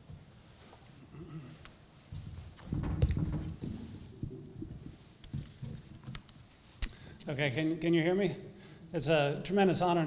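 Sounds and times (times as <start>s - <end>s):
footsteps: 1.6s - 6.8s
microphone thumps and rubbing: 2.1s - 6.7s.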